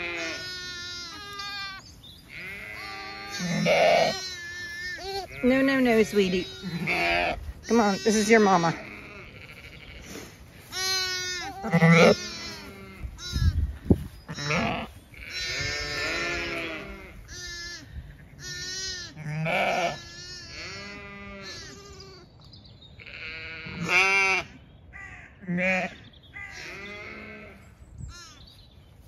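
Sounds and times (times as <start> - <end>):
sheep and lambs bleating: 0.0 - 28.6.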